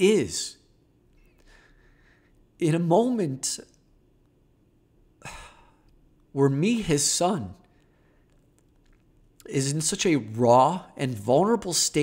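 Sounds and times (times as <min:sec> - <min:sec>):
man breathing: 0:01.2 - 0:02.5.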